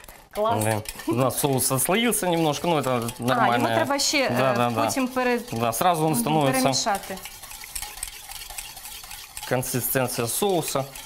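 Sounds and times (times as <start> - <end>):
utensil swishing through sauce: 0.0 - 11.0.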